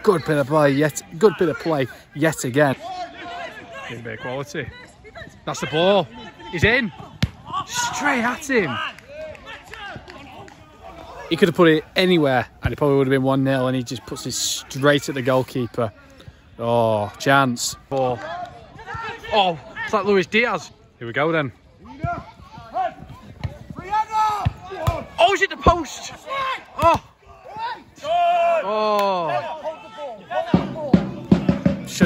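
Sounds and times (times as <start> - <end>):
footballers shouting: 0.0 - 16.1, 16.7 - 20.7, 21.3 - 32.0
football being kicked: 7.0 - 7.6, 23.3 - 25.2, 26.4 - 27.1.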